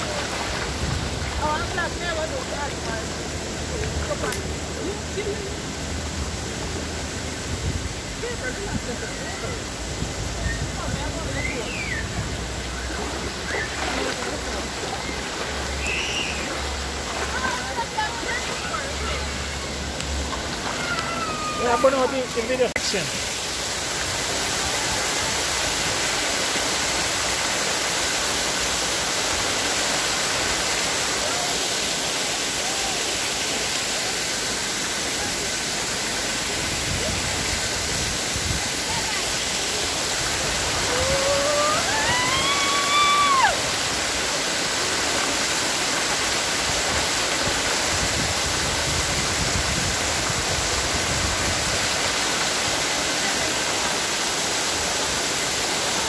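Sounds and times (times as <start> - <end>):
waterfall rushing over rock: 0.0 - 56.0.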